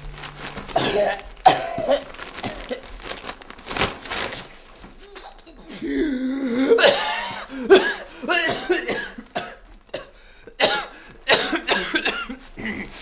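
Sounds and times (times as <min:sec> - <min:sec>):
person coughing: 0:00.7 - 0:02.9, 0:05.1 - 0:13.0.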